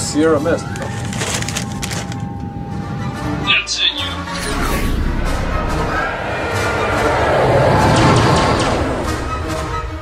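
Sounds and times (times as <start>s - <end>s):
paper bag rustling: 0.5s - 2.4s.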